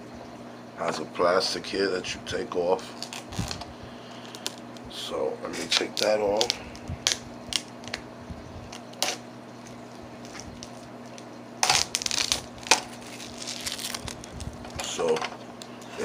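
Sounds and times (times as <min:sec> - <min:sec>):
plastic film crinkling: 0:02.8 - 0:04.7, 0:05.6 - 0:15.9.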